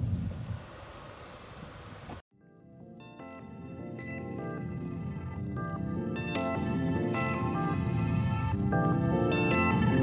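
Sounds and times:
car road and engine rumble: 0.0 - 2.2.

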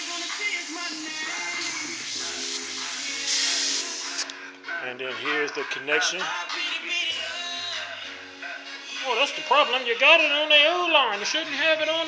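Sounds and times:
airbrush hissing air: 0.0 - 4.3
background music: 0.0 - 12.0.

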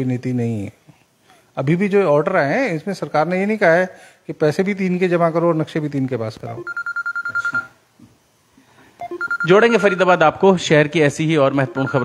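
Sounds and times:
electronic telephone ring: 6.6 - 7.7, 9.0 - 10.0, 11.6 - 12.0.

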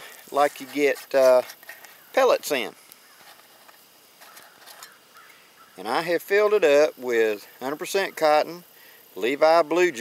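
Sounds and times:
metal tin scraping: 3.2 - 5.0.

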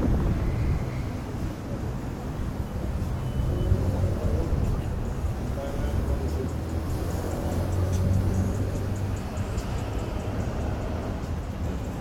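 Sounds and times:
traffic rumble: 0.0 - 12.0
voices of people passing: 0.0 - 12.0.

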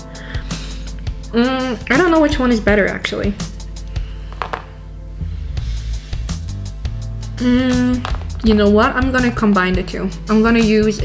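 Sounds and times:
music with low bass line: 0.0 - 11.0.

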